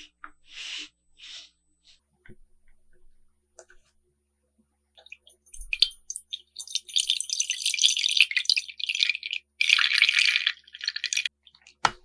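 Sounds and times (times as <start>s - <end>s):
milk pouring into a glass bowl: 5.0s - 11.3s.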